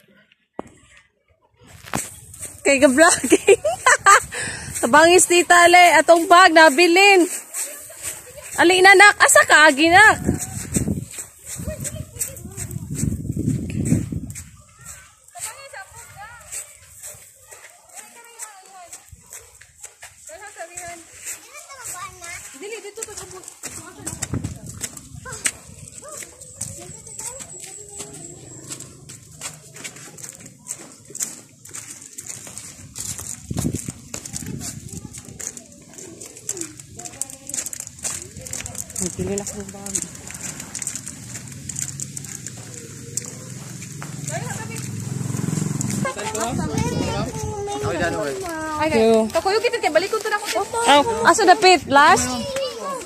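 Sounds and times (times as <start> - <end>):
footsteps on sand: 0.5 - 53.0
faint background voices: 9.8 - 53.0.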